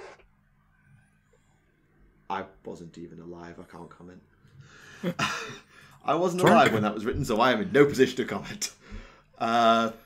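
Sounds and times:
person's voice: 0:06.1 - 0:07.6.

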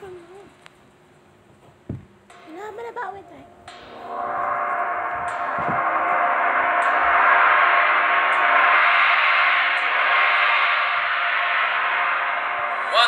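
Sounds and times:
large gong ringing: 0:02.3 - 0:13.0.

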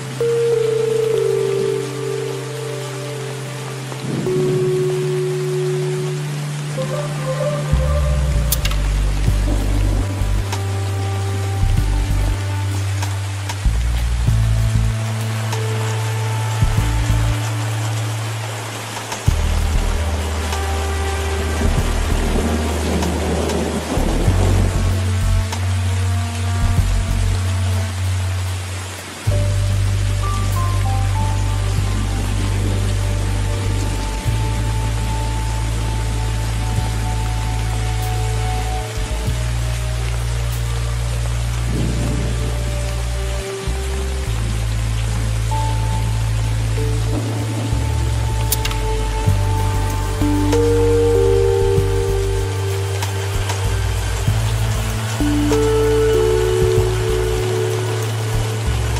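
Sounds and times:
slow ambient music: 0:00.0 - 0:58.9
steady rain hiss: 0:00.0 - 0:58.9
thunder rumble: 0:07.9 - 0:10.9, 0:21.3 - 0:25.8, 0:31.1 - 0:38.0, 0:39.1 - 0:45.2, 0:46.6 - 0:58.9.

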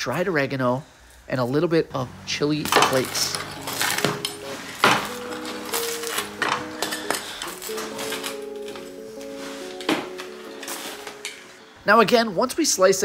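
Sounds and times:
background music with held notes: 0:01.9 - 0:13.0.

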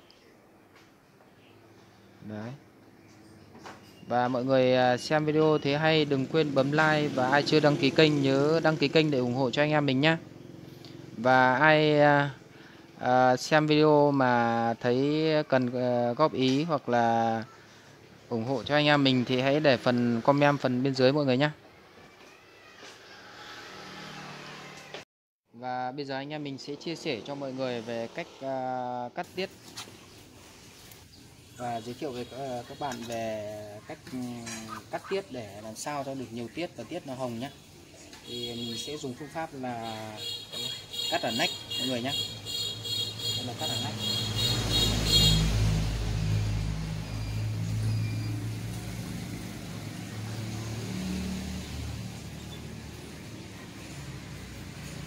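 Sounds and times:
vehicle engine rumble passing: 0:03.1 - 0:13.3, 0:23.1 - 0:25.0, 0:43.1 - 0:55.0.

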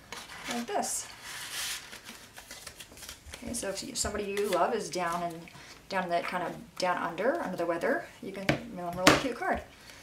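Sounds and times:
light paper handling: 0:00.0 - 0:05.4.

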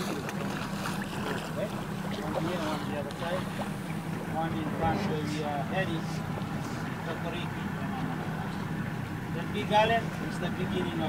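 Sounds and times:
motorboat engine hum: 0:00.0 - 0:11.0
water rushing: 0:00.0 - 0:11.0.

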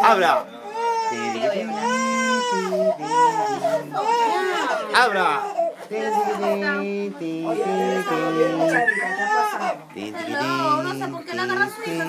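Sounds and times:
woman wailing long vowels: 0:07.4 - 0:09.8.

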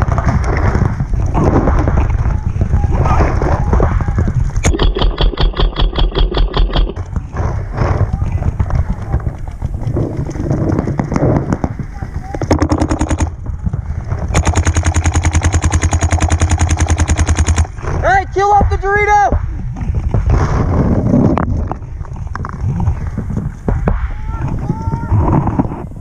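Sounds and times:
paintball marker firing bursts: 0:04.6 - 0:07.1, 0:12.5 - 0:13.4, 0:14.3 - 0:17.8.

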